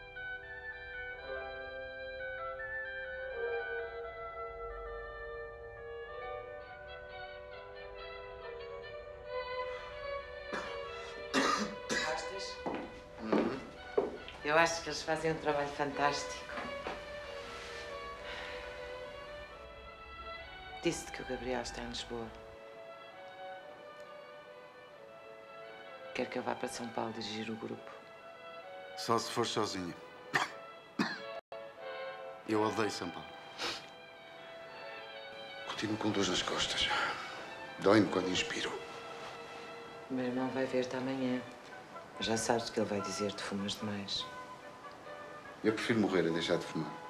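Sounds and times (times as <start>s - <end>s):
soft string music: 0.0s - 47.0s
person coughing: 10.5s - 12.3s, 30.3s - 31.4s.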